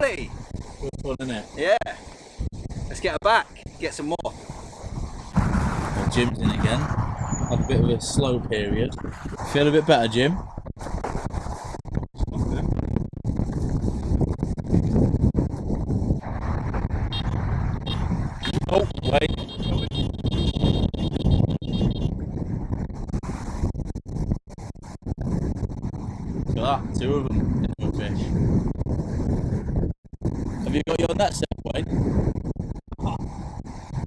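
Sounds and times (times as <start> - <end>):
wind buffeting microphone: 0.0 - 34.0.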